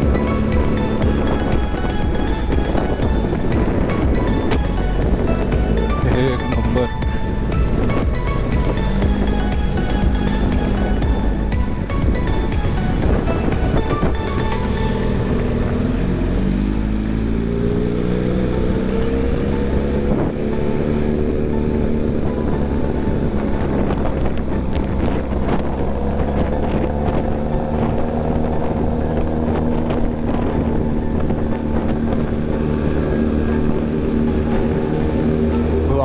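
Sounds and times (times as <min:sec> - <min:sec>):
motorcycle engine revving: 0:00.0 - 0:36.0.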